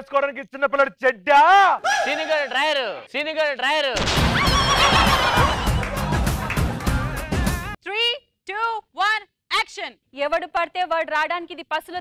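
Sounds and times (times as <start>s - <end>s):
music: 4.3s - 7.8s.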